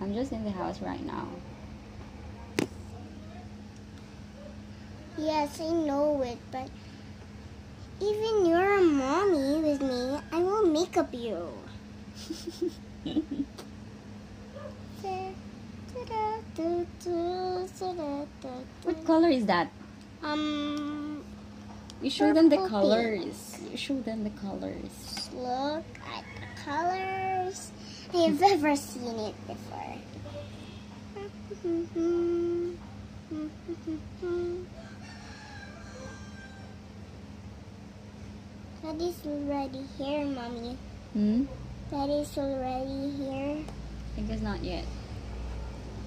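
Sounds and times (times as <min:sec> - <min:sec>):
low electrical hum: 0:00.0 - 0:46.0
rooster crowing faintly: 0:09.6 - 0:10.8, 0:25.9 - 0:27.4, 0:34.7 - 0:36.8
girl singing wordless tune: 0:15.0 - 0:19.1, 0:25.2 - 0:30.1, 0:31.1 - 0:34.8
person humming: 0:31.1 - 0:34.8, 0:41.2 - 0:41.5.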